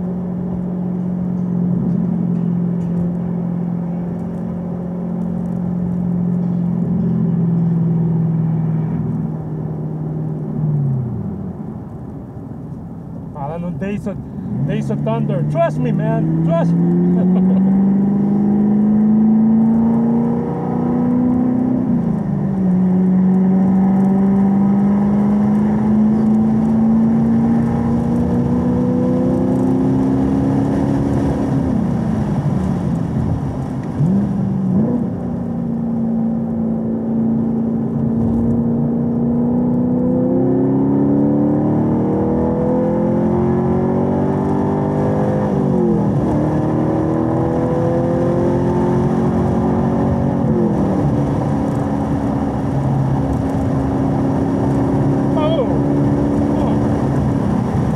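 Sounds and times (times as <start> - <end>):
car engine accelerating from cabin: 0.0 - 11.9, 13.3 - 57.9.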